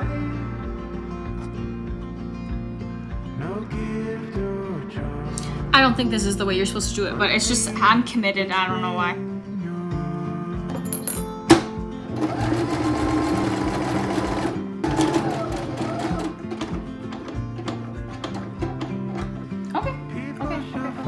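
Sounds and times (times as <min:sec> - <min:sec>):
background guitar music: 0:00.0 - 0:21.0
sewing machine stitching: 0:12.1 - 0:19.4.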